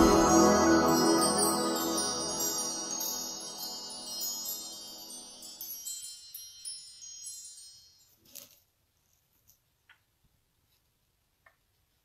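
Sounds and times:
high glittering chime tones: 0.0s - 8.2s.

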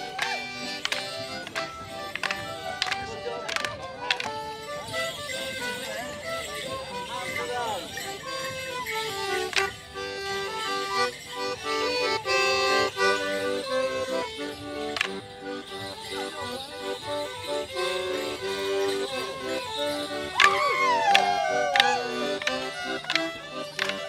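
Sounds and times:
sharp clacks: 0.0s - 5.6s, 9.1s - 11.3s, 14.8s - 15.8s, 18.0s - 24.0s
accordion dance tune: 0.0s - 24.0s.

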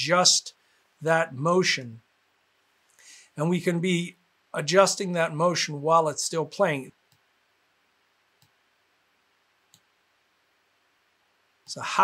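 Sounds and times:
faint computer mouse clicks: 7.1s - 7.3s, 8.4s - 8.6s, 9.7s - 9.9s.

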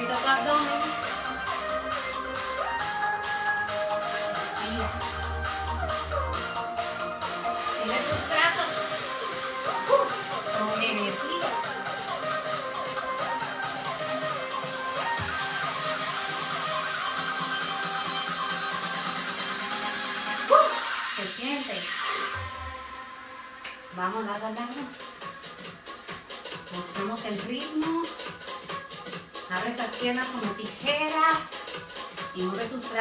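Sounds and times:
background music with voice: 0.0s - 33.0s.

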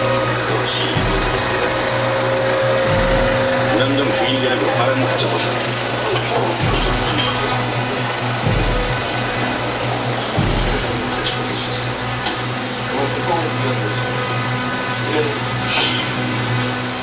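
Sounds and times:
film projector whirring: 0.0s - 17.0s
music: 0.0s - 17.0s
low thuds: 1.0s - 4.1s, 6.6s - 11.4s.

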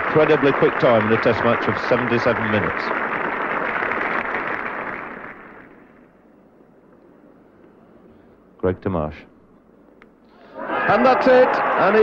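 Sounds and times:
crowd applauding: 0.0s - 5.9s, 10.6s - 12.0s.

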